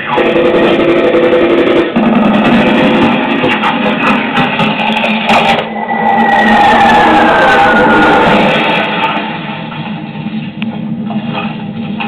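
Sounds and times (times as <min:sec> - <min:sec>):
tone sliding downward: 0:05.2 - 0:09.6.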